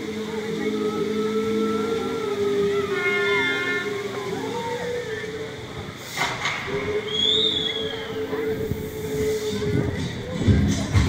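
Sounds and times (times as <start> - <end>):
long steady tone: 0.0 - 6.0
street crowd noise: 0.0 - 11.0
high rising and falling whistle: 7.0 - 8.2.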